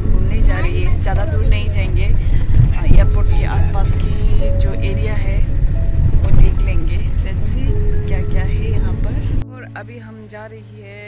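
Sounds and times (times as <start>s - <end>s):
road noise inside car: 0.0s - 9.5s
car engine rumble: 0.0s - 11.0s
woman talking: 0.2s - 5.6s, 6.2s - 11.0s.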